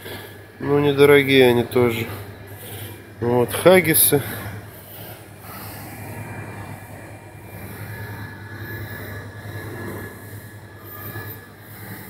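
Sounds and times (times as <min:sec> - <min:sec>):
faint high whine: 0:00.0 - 0:12.0
low hum and rumble: 0:00.0 - 0:12.0.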